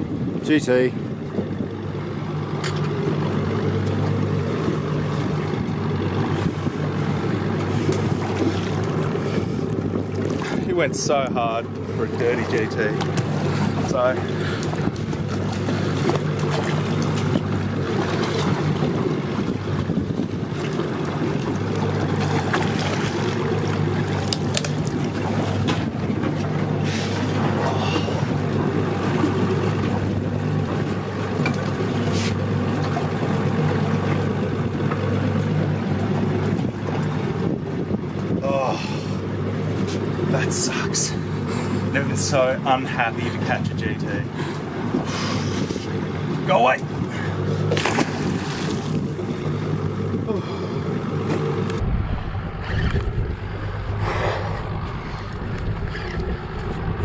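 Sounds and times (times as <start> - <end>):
boat engine humming: 0.0 - 57.0
sea noise: 0.0 - 57.0
wind: 0.0 - 57.0.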